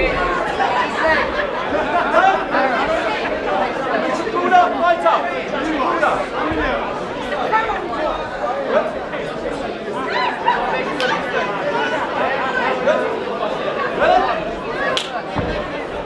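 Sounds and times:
crowd chattering in a hall: 0.0 - 16.0.

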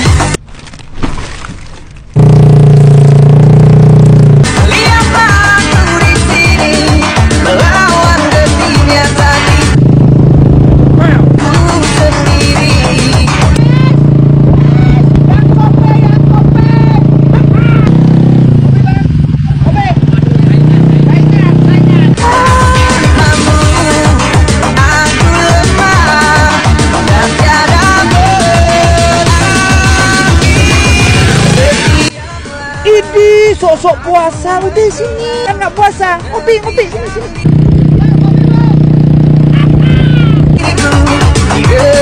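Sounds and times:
motorbike engine running: 2.2 - 32.1, 37.0 - 42.0.

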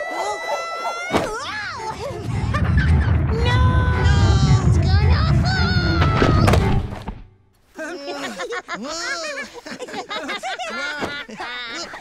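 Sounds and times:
low rumble: 1.9 - 7.3.

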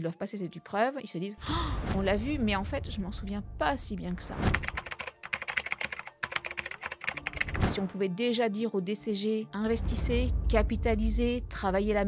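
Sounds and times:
keyboard typing clicks: 4.5 - 7.8.

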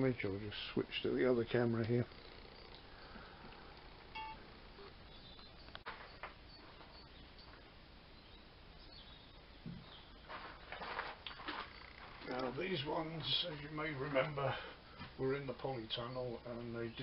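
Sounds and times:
faint high chirp: 4.1 - 10.4, 11.2 - 12.5.

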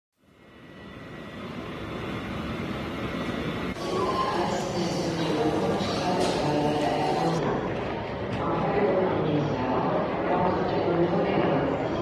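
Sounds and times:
airport ambience roar: 0.2 - 12.0.

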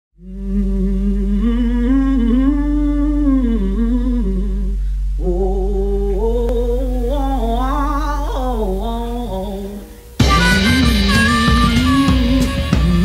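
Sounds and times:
steady low drone: 0.2 - 13.0
harmonica playing bent notes: 10.2 - 13.0.

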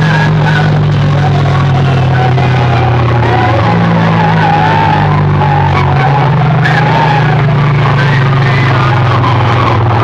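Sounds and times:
deep sustained bass note: 0.0 - 10.0
loud distorted bass-heavy music: 0.0 - 10.0.

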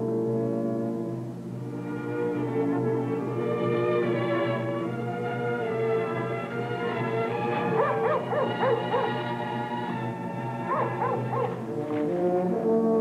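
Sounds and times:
orchestral music with held chords: 0.0 - 13.0
dog barking: 7.7 - 9.3, 10.6 - 11.6.

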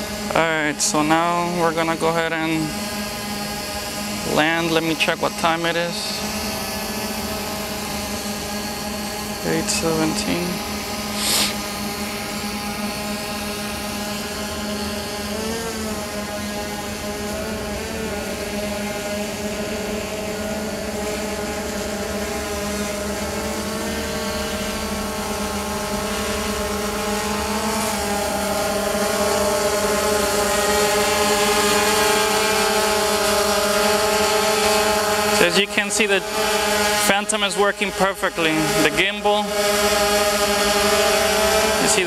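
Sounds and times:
quadcopter drone hovering whine: 0.0 - 42.0.

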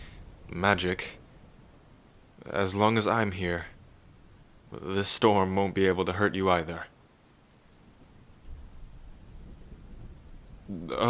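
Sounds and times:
steady rain: 0.0 - 11.0
thunder rumbling: 7.9 - 11.0.

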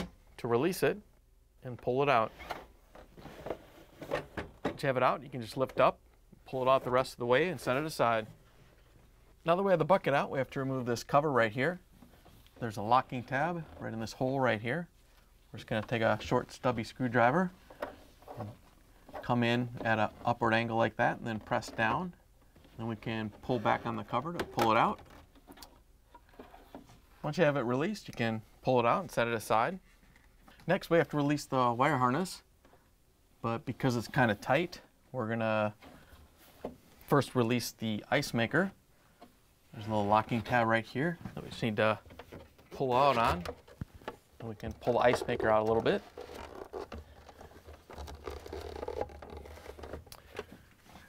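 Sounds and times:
plastic scraping on plastic: 39.9 - 51.0
plastic clicks and rubs: 41.2 - 51.0.

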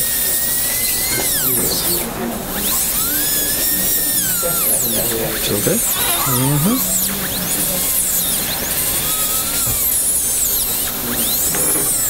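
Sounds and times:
dental drill whining: 0.0 - 12.0.

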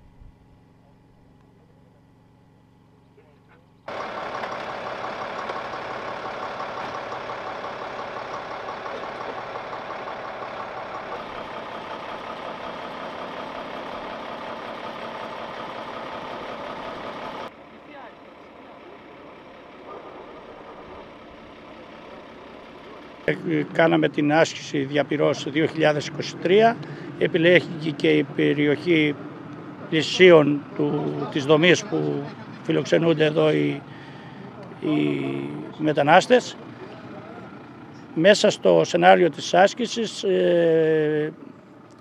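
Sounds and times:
truck engine running: 0.0 - 42.0.

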